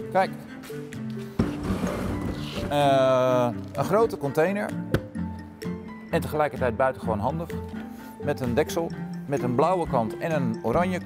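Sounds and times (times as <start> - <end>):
background music with held notes: 0.0 - 11.0
wheelie bin rolling on concrete: 1.4 - 3.0.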